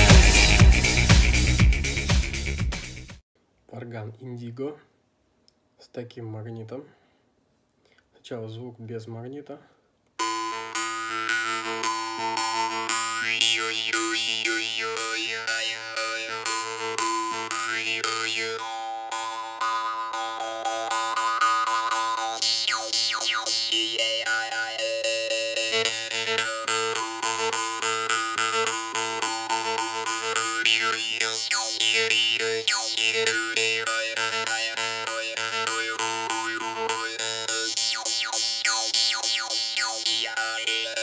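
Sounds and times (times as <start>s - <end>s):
jaw harp twangy drone: 10.2s - 41.0s.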